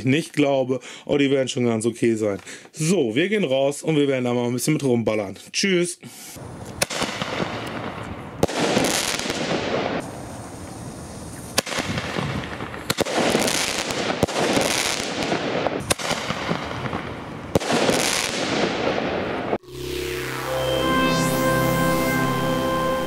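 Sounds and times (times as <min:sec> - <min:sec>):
firecracker bangs: 0:06.8 - 0:19.6
rushing noise: 0:19.5 - 0:23.0.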